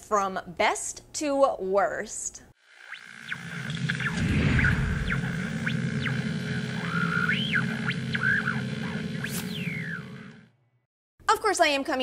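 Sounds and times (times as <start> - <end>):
sliding whistle-like tones: 3.0 - 10.2
low electronic drone: 3.0 - 10.5
rumbling swell: 4.2 - 6.2.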